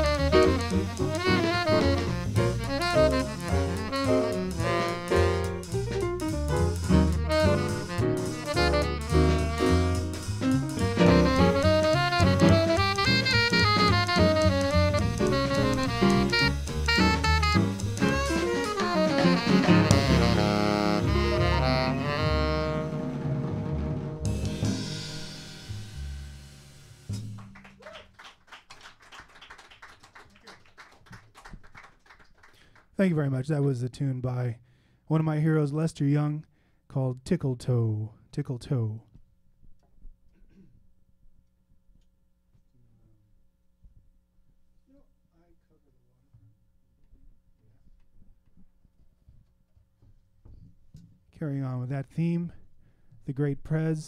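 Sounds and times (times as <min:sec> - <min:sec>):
saxophone: 0:00.0 - 0:25.0
upright piano: 0:00.0 - 0:25.6
double bass: 0:00.0 - 0:27.4
drum kit: 0:00.0 - 0:27.8.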